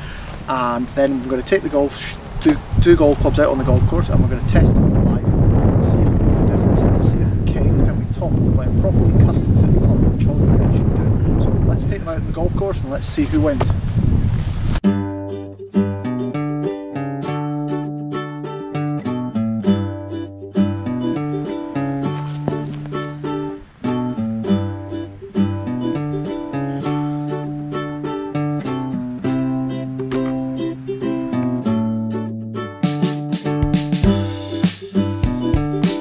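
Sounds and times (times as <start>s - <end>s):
upbeat plucked string music: 14.8s - 36.0s.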